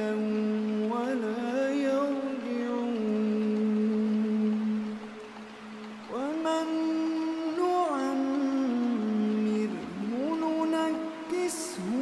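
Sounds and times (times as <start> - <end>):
man reciting a long held note: 6.1 - 12.0.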